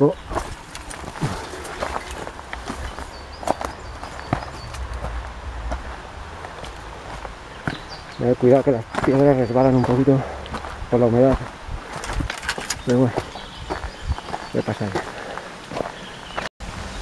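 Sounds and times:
footsteps on rocky trail: 0.0 - 16.5
loose stones knocking: 0.2 - 15.1
low steady rumble: 1.6 - 9.5.

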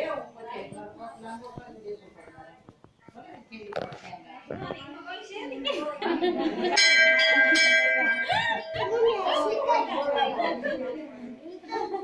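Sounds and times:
voices: 0.0 - 12.0
metal bell ringing: 6.7 - 9.5.

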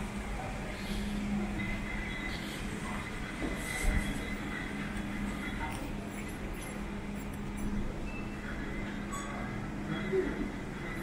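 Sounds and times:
store background hum: 0.0 - 11.0.

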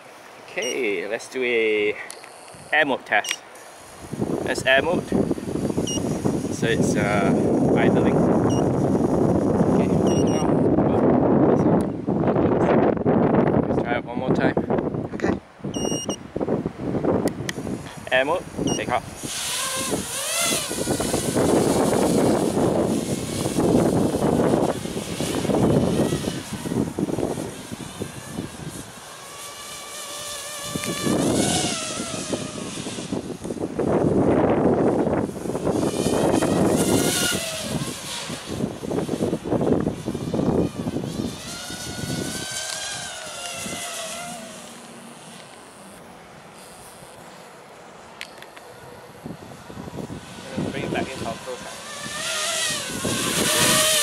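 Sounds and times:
quadcopter motors whining: 0.0 - 54.0.

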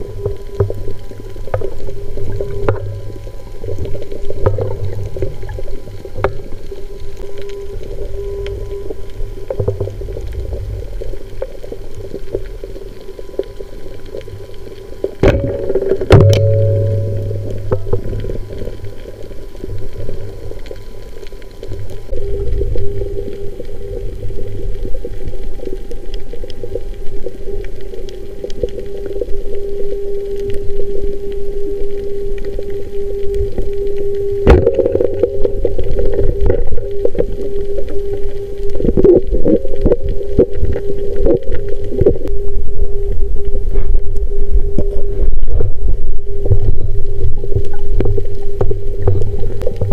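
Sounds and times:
low hum: 0.0 - 49.9
water rumble: 0.0 - 49.9.

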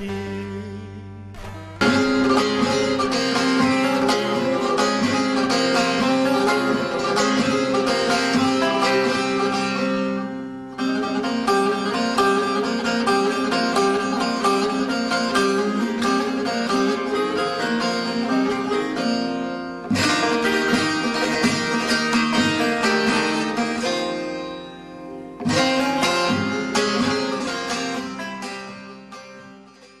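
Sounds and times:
plucked lute melody: 0.0 - 30.0
sharp strummed accents: 0.0 - 30.0.

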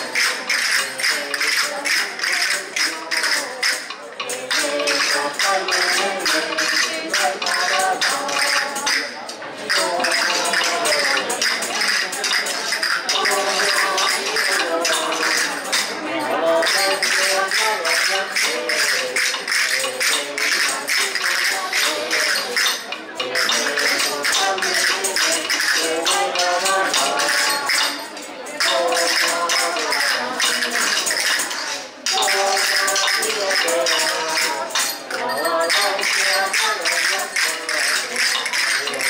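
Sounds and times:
tambourines shaken and struck: 0.0 - 39.0
voices singing a melody: 0.0 - 39.0.

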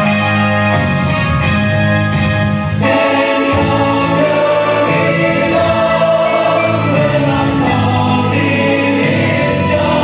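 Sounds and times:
group singing in close harmony: 2.8 - 10.0.

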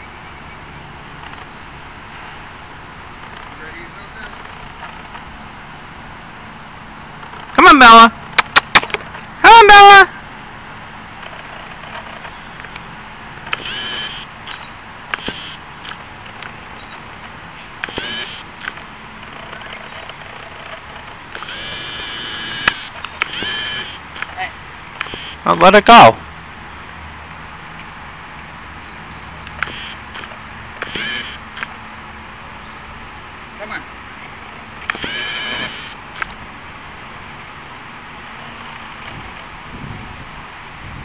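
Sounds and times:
distant road traffic: 0.0 - 41.0
outdoor background noise: 0.0 - 41.0
short high call: 7.6 - 8.1, 9.4 - 10.2
small sharp clicks: 8.3 - 9.2, 11.2 - 17.0, 17.8 - 24.4, 29.4 - 31.8, 34.4 - 36.4.

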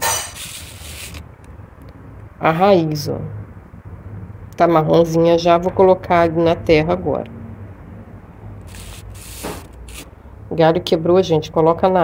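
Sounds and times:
hand rustling plant leaves: 8.7 - 10.1.

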